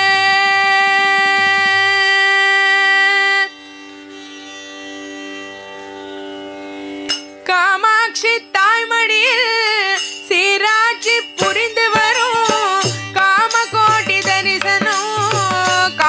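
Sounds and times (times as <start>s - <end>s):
woman singing devotional song: 0.0s - 3.6s, 7.4s - 16.0s.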